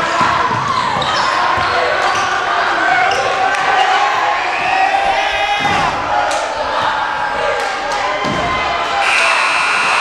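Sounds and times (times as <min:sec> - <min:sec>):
voices of spectators and players: 0:00.0 - 0:10.0.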